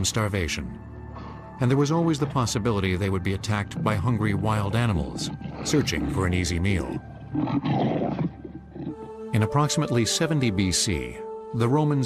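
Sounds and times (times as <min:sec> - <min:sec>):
wild animal roaring: 0:04.7 - 0:09.2.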